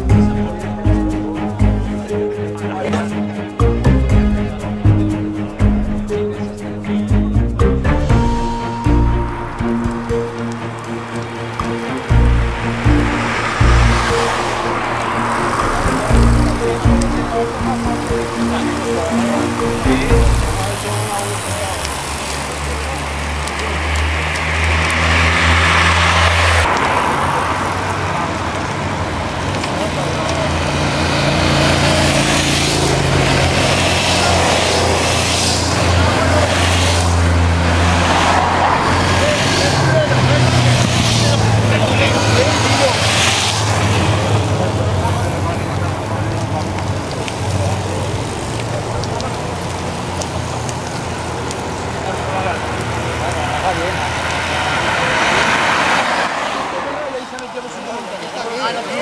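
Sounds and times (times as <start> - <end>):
indistinct voices: 0.0 - 28.5
passing vehicles: 0.0 - 59.0
road traffic engines humming: 0.0 - 59.0.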